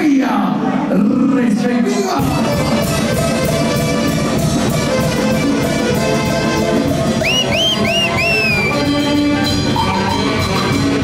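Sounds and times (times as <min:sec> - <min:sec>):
live dance band music: 0:01.9 - 0:11.0.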